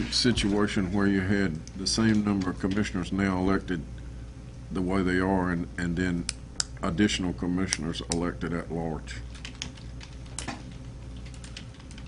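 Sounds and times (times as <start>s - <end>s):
low room hum: 0.0s - 12.0s
laptop keyboard typing: 9.3s - 12.0s.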